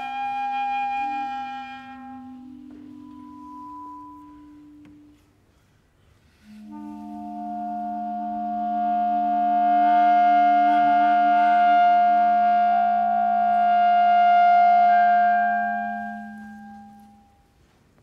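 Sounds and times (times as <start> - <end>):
clarinets holding long notes: 0.0 - 5.2, 6.4 - 17.4
low sustained tone: 0.0 - 5.4, 6.2 - 17.6.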